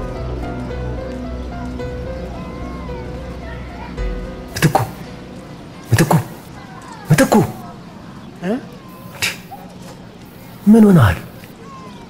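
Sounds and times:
person's voice falling in pitch: 0:04.5 - 0:05.0.

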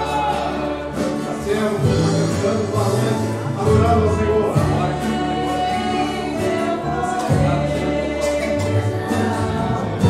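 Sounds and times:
acoustic guitar: 0:00.0 - 0:10.0
group singing a hymn: 0:00.0 - 0:10.0
keyboard: 0:00.0 - 0:10.0
sustained bass notes: 0:00.0 - 0:10.0.

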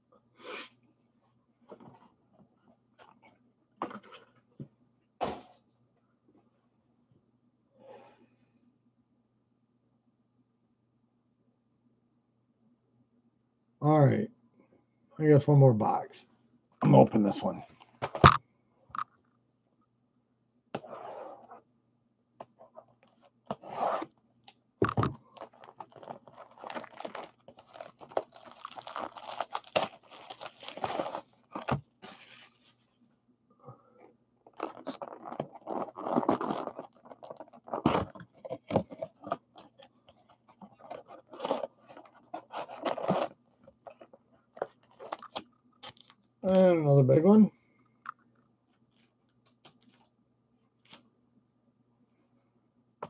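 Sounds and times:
plastic shrink wrap crinkling: 0:25.2 - 0:32.7, 0:34.4 - 0:39.8, 0:40.6 - 0:46.2.

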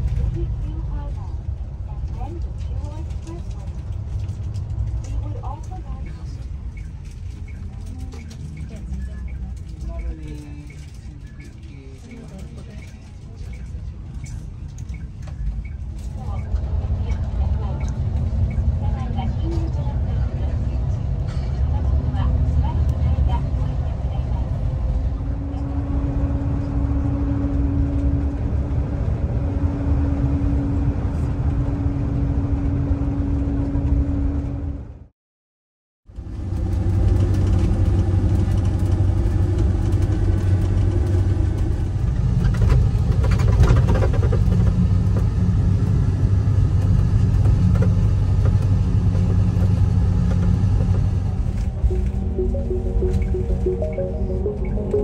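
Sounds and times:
engine drone and road rumble: 0:00.0 - 0:35.1, 0:36.1 - 0:55.0
low hum: 0:51.4 - 0:55.0.

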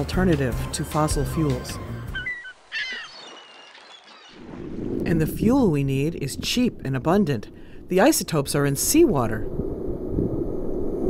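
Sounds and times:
birds chirping: 0:01.1 - 0:07.9.

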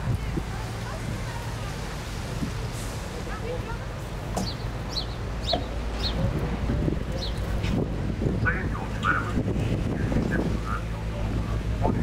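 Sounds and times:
birds chirping high calls: 0:04.4 - 0:06.3.

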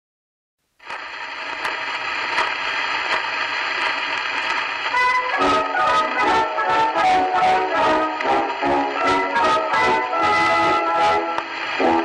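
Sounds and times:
record surface hiss and crackle: 0:00.6 - 0:12.0.

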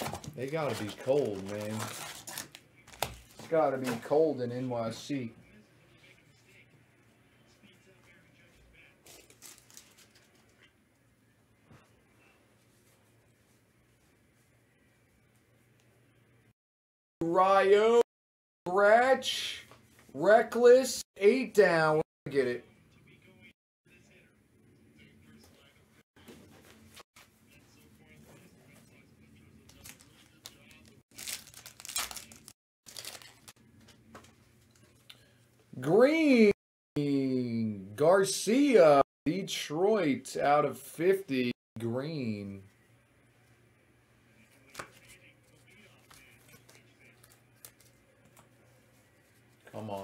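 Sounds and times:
foil wrapper tearing and crinkling: 0:00.0 - 0:03.5, 0:09.0 - 0:10.3, 0:29.7 - 0:33.6.

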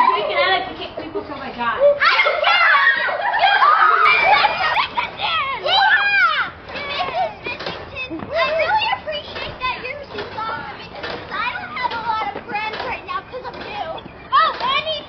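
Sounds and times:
girls calling out and squealing: 0:00.0 - 0:15.0.

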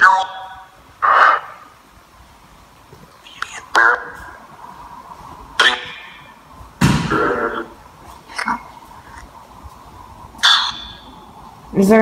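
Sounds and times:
low hiss: 0:00.0 - 0:12.0
broken voice-like fragments: 0:05.6 - 0:06.3.

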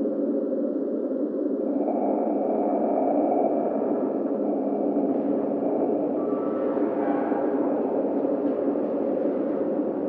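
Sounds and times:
dark ambient drone: 0:00.0 - 0:10.0.

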